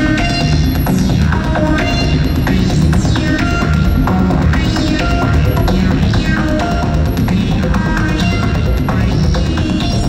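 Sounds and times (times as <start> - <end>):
stepped electronic tones: 0.0 - 8.7
throbbing low drone: 0.0 - 10.0.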